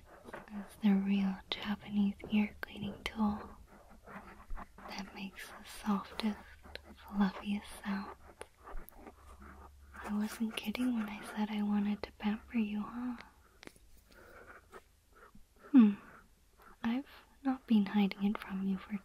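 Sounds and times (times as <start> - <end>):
faint low hum: 0.0 - 19.0
woman speaking and whispering: 0.3 - 3.7, 4.8 - 8.3, 9.9 - 13.4, 15.7 - 19.0.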